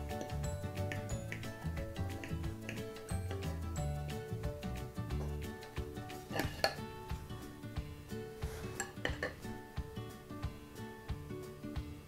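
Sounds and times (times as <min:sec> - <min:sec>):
soft background music: 0:00.0 - 0:12.0
cutlery clinking on a plate: 0:06.3 - 0:06.8, 0:08.7 - 0:09.5.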